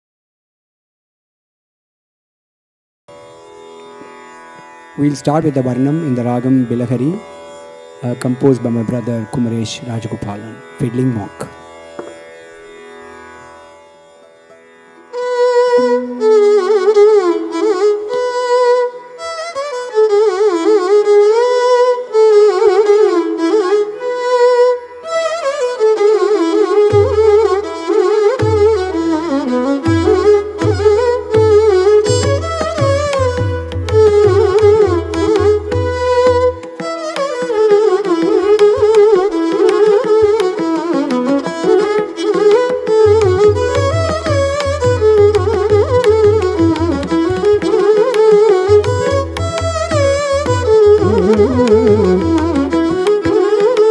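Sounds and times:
two violins playing melody: 0:05.0 - 0:12.7, 0:14.2 - 0:53.9
hand drum strokes: 0:29.9 - 0:53.9.

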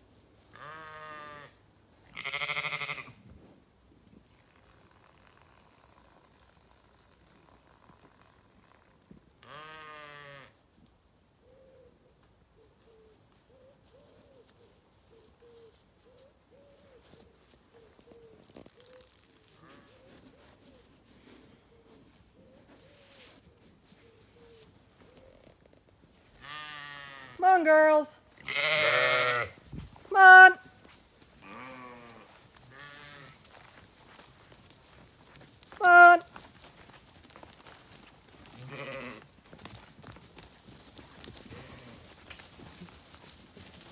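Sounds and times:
sheep bleating: 0:00.5 - 0:03.2, 0:09.4 - 0:10.6, 0:26.4 - 0:27.6, 0:28.4 - 0:29.6, 0:31.4 - 0:33.5, 0:38.5 - 0:39.3, 0:41.5 - 0:42.1.

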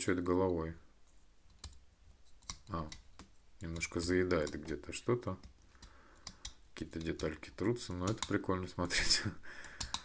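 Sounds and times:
plastic parts clicking: 0:01.5 - 0:08.5, 0:09.6 - 0:10.0.

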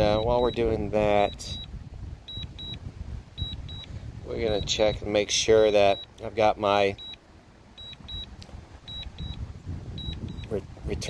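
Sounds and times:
short high double beeps: 0:00.0 - 0:01.7, 0:02.3 - 0:02.8, 0:03.4 - 0:05.0, 0:07.0 - 0:07.2, 0:07.8 - 0:09.4, 0:10.0 - 0:10.6.

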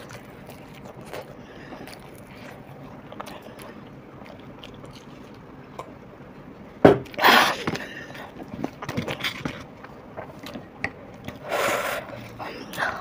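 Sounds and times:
mouth clicks and crunches: 0:00.0 - 0:06.0
quiet chewing of fried food: 0:00.0 - 0:13.0.

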